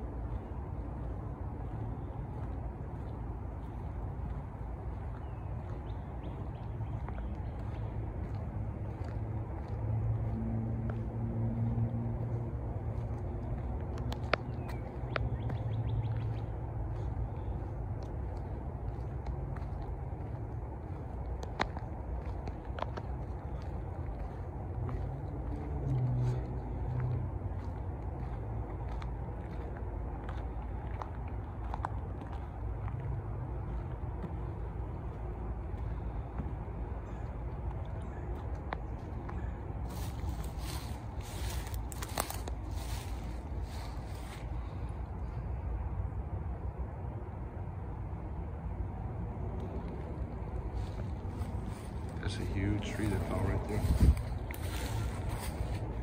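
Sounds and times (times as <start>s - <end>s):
steady low rumble: 0.0s - 56.0s.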